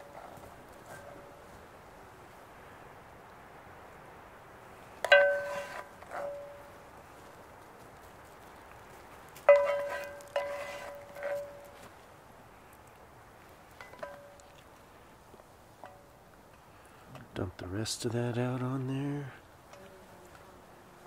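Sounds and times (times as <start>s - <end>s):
pan ringing: 5.1s - 6.7s.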